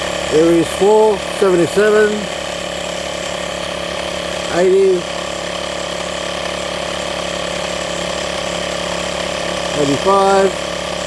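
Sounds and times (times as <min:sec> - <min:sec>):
air inflator compressor running: 0:00.0 - 0:11.0.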